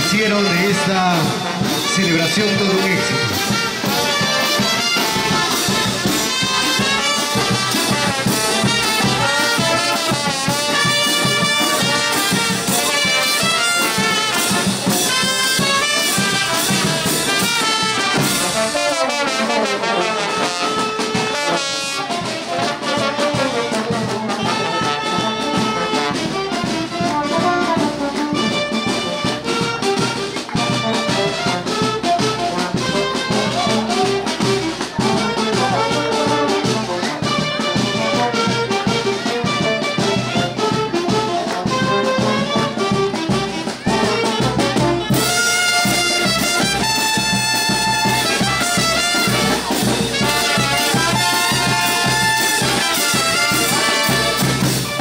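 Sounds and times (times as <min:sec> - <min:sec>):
brass latin dance music: 0:00.0 - 0:55.0.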